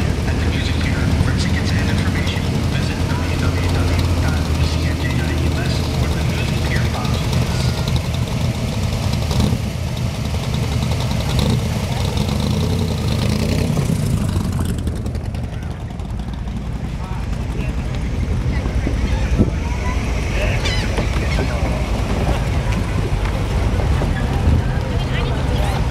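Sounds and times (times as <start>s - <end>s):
car engine rumbling: 0.0s - 25.9s
crowd voices: 0.0s - 25.9s.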